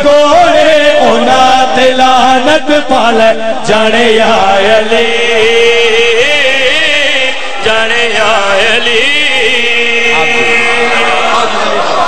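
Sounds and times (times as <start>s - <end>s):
man chanting through a microphone: 0.0s - 12.0s.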